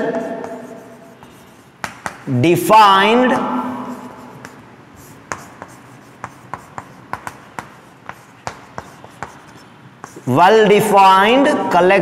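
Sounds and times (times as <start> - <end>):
chalk tapping on blackboard: 0.2 - 2.3, 3.9 - 10.4.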